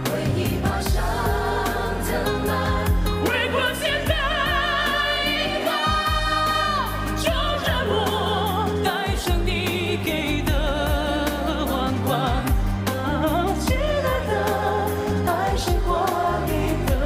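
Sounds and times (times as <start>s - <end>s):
band accompaniment: 0.0s - 17.0s
man singing a ballad: 7.3s - 14.3s.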